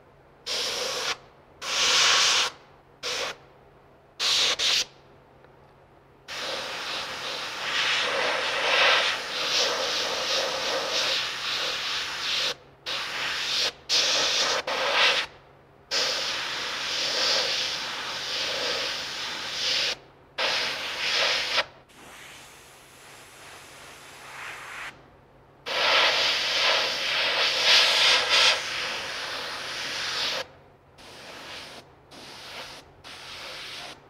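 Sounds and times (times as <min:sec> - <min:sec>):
airbrush spraying: 0:00.5 - 0:03.4, 0:04.2 - 0:04.9, 0:06.3 - 0:15.3, 0:15.9 - 0:25.0, 0:25.7 - 0:34.0.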